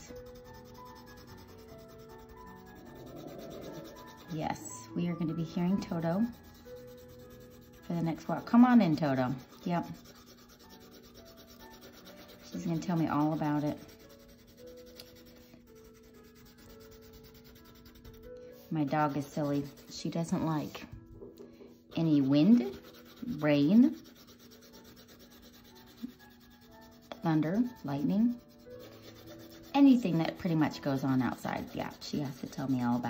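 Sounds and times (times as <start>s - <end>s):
colored pencil scratching on paper: 0.0s - 21.0s, 21.8s - 33.0s.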